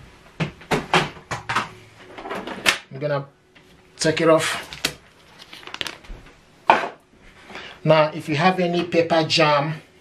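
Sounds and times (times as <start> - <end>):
cable handling clicks and rustles: 4.4 - 6.3.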